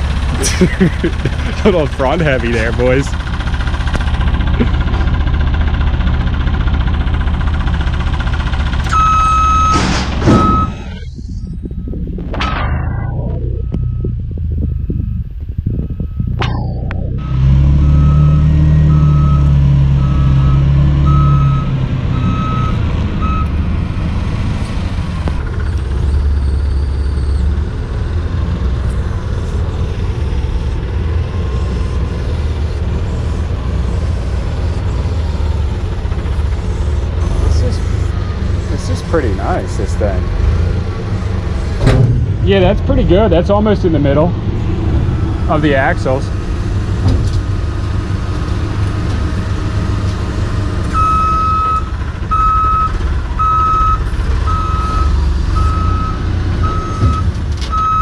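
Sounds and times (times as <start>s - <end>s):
forklift engine running: 0.0s - 58.0s
warning beeper short beeps: 8.9s - 23.5s.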